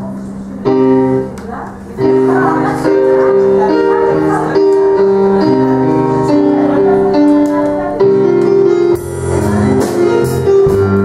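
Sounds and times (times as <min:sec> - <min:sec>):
electronic keyboard piano chords: 0:00.0 - 0:11.0.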